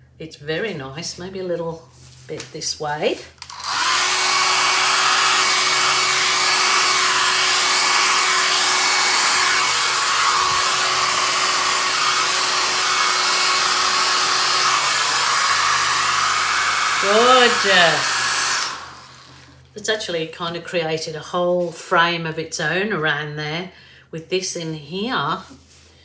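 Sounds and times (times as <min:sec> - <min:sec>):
hair dryer blowing air: 0:03.4 - 0:19.6.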